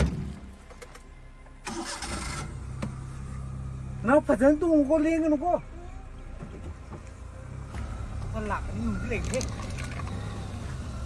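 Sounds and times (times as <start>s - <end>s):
car engine starting and idling: 0.0s - 11.0s.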